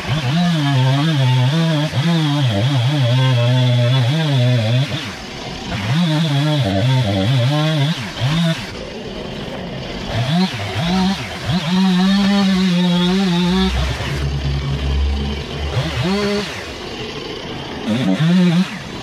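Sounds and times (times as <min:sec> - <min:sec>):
chainsaw revving and idling: 0:00.0 - 0:19.0.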